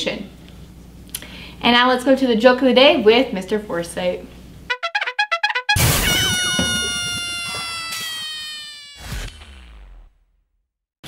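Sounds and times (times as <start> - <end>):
short sound burst: 4.7 - 7.6
comic falling pitch note: 4.7 - 9.2.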